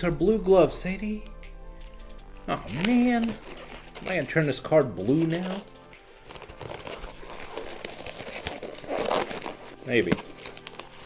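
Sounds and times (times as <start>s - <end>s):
gloves crinkly rustling: 1.0s - 11.0s.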